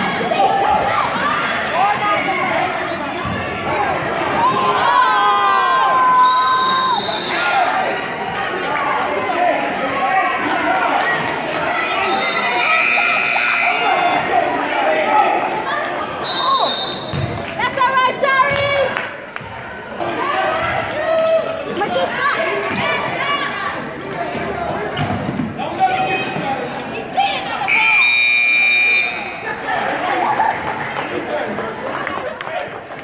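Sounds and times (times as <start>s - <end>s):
referee whistle: 6.2s - 7.5s, 12.0s - 14.0s, 16.2s - 17.3s, 27.7s - 29.6s
sneakers squeaking on hardwood: 24.0s - 25.6s.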